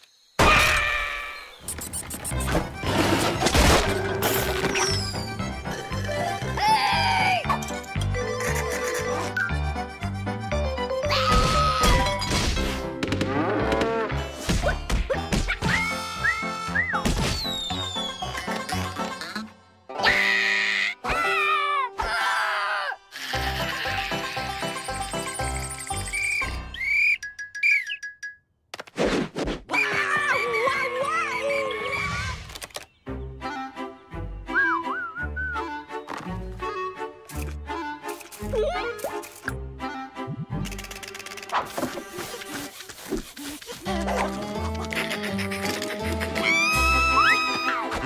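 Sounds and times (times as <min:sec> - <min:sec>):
playful cartoon music: 0:00.4 - 0:28.6, 0:29.7 - 0:48.0.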